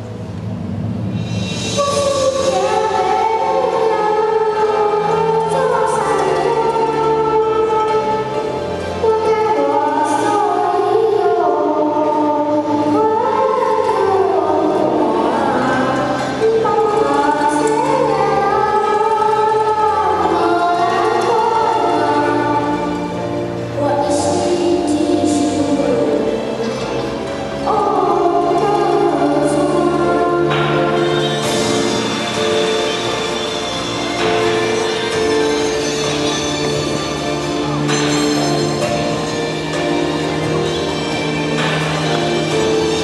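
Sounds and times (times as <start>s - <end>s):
karaoke backing track: 0.0s - 43.0s
boy singing into microphone: 1.8s - 32.0s.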